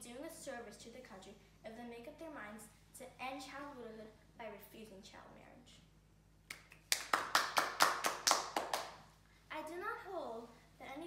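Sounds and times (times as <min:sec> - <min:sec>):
children clapping in rhythm: 0:06.5 - 0:08.9.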